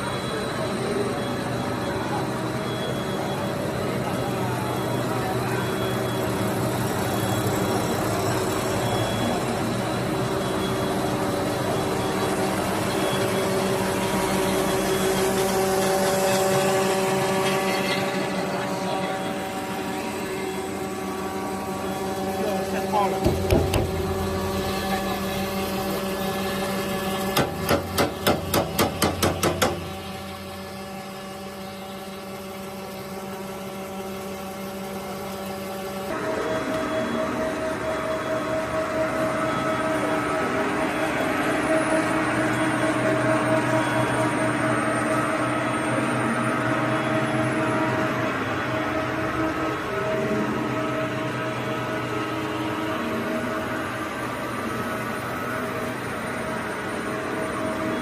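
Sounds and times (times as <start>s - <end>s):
extruder machine humming: 0.0s - 58.0s
machine whine: 0.0s - 58.0s.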